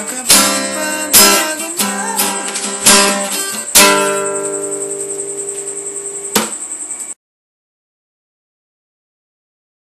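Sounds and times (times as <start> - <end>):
acoustic guitar chord ringing: 0.0 - 6.6
steady high-pitched whine: 0.0 - 7.2
sharp knock: 6.3 - 6.6.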